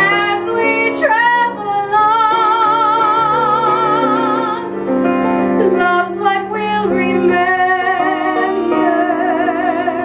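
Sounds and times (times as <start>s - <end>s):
soprano singing with vibrato: 0.0s - 4.8s, 5.6s - 10.0s
piano accompaniment: 0.0s - 10.0s.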